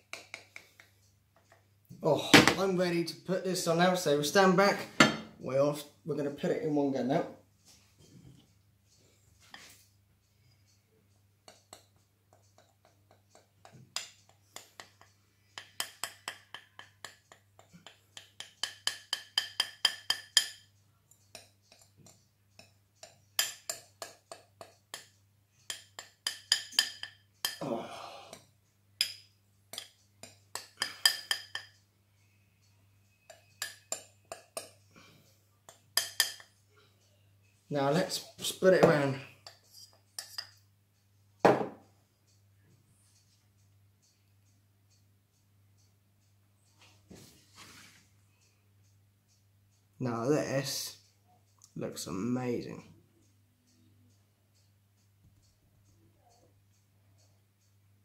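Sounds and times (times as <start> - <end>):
metal spoon scraping glass bowl: 38.8 - 40.6.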